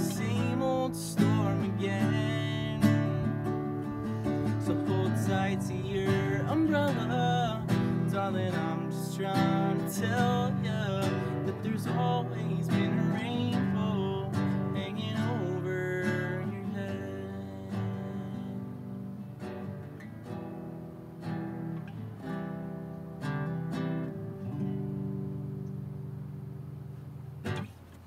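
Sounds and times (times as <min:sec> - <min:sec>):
classical guitar chords: 0:00.0 - 0:28.0.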